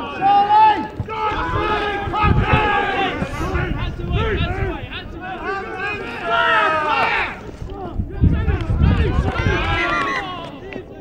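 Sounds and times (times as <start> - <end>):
distant people shouting: 0.0 - 11.0.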